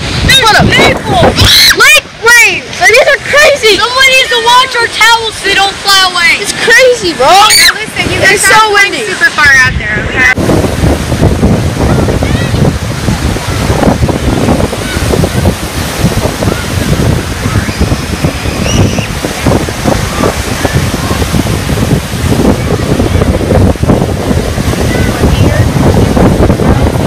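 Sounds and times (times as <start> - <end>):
waves breaking on beach: 0.0 - 27.0
wind buffeting microphone: 0.0 - 27.0.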